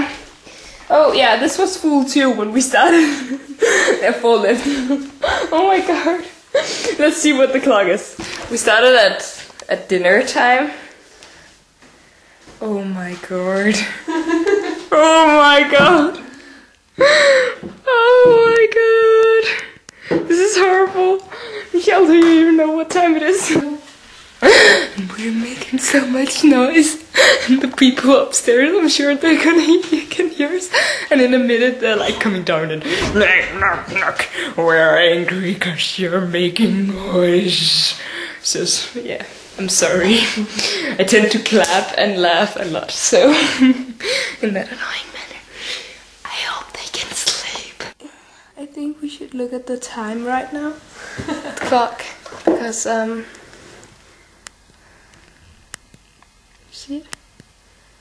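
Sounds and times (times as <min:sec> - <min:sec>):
woman whispering: 0:44.7 - 0:45.5, 0:46.2 - 0:48.0.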